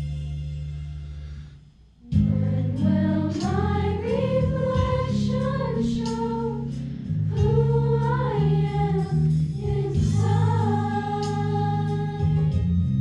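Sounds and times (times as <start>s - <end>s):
instrumental accompaniment: 0.0s - 13.0s
girls singing together: 2.2s - 12.6s.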